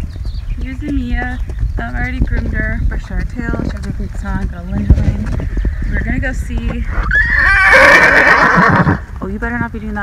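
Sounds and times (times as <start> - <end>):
horse whinnying: 6.9 - 9.1.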